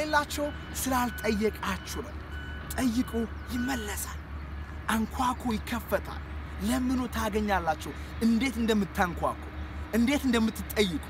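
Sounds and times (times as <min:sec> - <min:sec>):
man talking: 0:00.0 - 0:04.2, 0:04.8 - 0:11.0.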